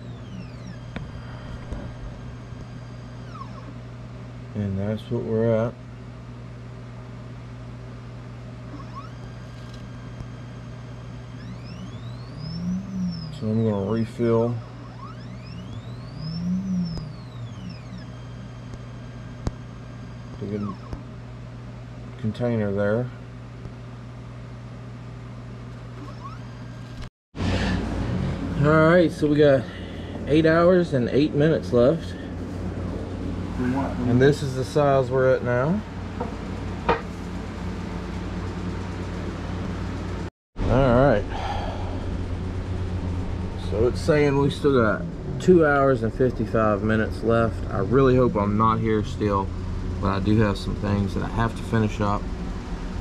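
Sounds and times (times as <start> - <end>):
stepper motor whining: 0.0 - 3.9, 8.7 - 21.1, 25.9 - 35.8, 40.6 - 53.0
constant low hum: 0.0 - 53.0
man speaking: 13.4 - 14.6.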